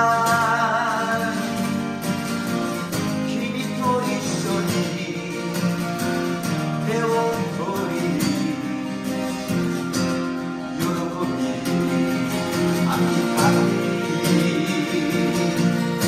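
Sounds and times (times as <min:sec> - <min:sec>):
acoustic guitars strumming: 0:00.0 - 0:16.0.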